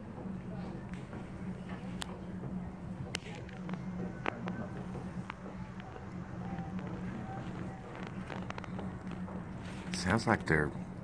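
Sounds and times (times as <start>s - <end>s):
distant drum beats: 0.0s - 11.0s
faint chanting voices: 0.0s - 11.0s
steady low hum: 0.0s - 11.0s.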